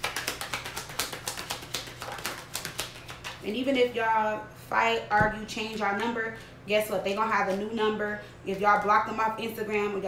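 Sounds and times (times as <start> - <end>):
cards being shuffled: 0.0 - 3.4.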